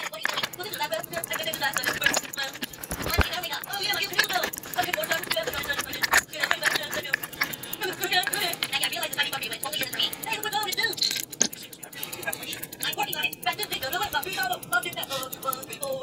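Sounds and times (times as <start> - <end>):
metallic clicks and taps: 0.0 - 16.0.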